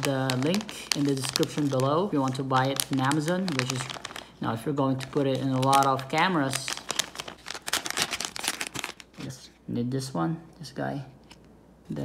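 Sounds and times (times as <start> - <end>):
plastic pouch crinkling: 0.0 - 9.4.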